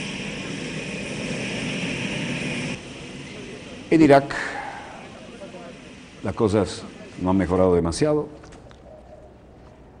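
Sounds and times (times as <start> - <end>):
turboprop engines running: 0.0 - 10.0.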